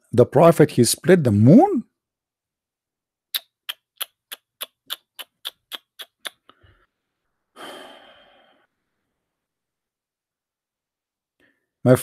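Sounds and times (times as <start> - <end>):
man sighing: 7.6 - 8.6.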